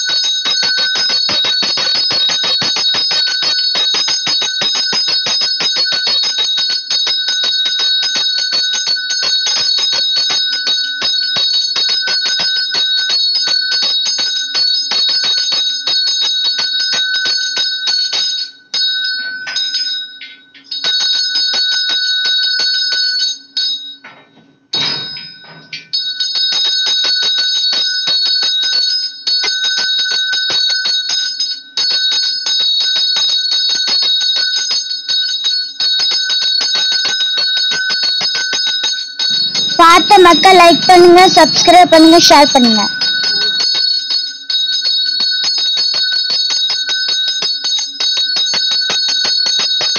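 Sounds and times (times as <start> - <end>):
bell ringing rapidly: 36.3 - 47.3.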